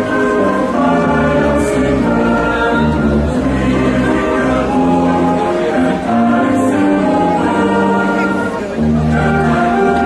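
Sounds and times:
mixed choir singing a hymn: 0.0 - 10.0.

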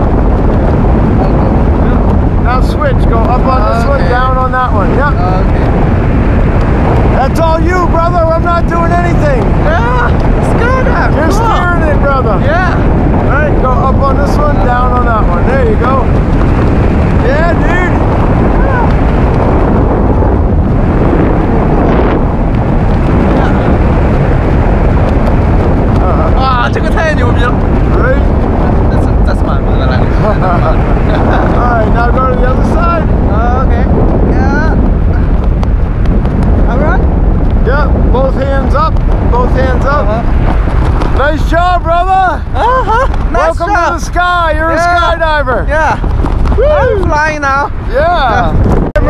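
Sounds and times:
wind rushing over microphone: 0.0 - 49.0.

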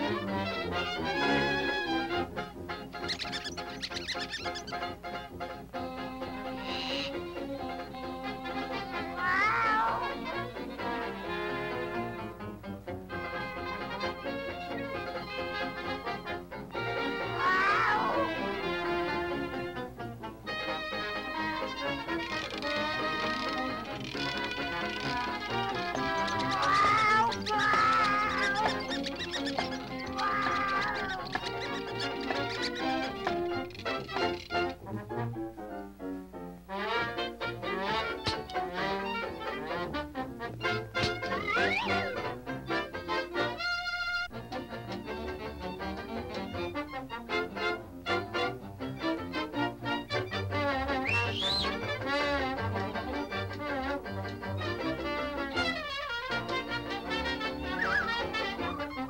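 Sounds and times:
bouncy orchestral cartoon music: 0.0 - 59.0
high-pitched squeaks: 3.0 - 4.8, 22.2 - 34.8, 41.0 - 42.1, 57.7 - 59.0
cartoon cat crying out: 9.1 - 10.3, 17.2 - 18.5, 26.2 - 33.0.

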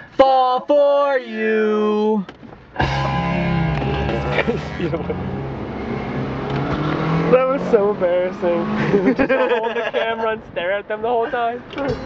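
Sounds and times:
car engine and road noise: 0.0 - 12.0
person laughing: 4.1 - 5.3, 8.8 - 10.3.

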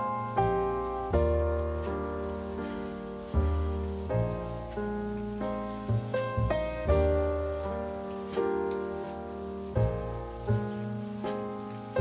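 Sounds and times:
piano chords ringing: 0.0 - 12.0.

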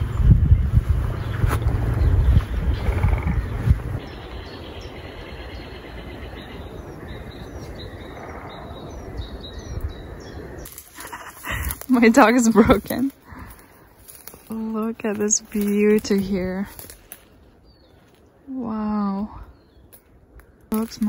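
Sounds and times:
small birds chirping: 0.0 - 21.0
wind rumble on microphone: 0.0 - 21.0.

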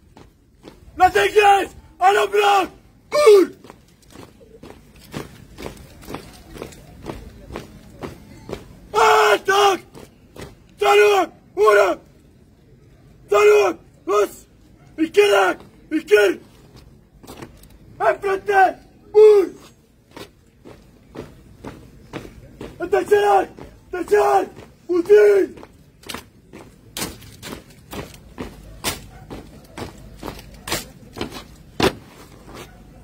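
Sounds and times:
boots marching in step: 3.2 - 10.6, 19.4 - 33.0.

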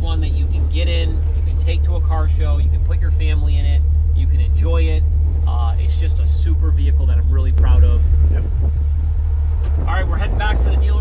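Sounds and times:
man talking: 0.0 - 8.7, 9.7 - 11.0
car engine drone from inside cab: 0.0 - 11.0.

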